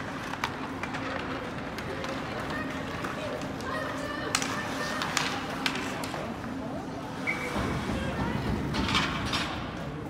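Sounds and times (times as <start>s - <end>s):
skates on ice: 0.0s - 9.8s
stick hitting puck: 4.3s - 6.2s.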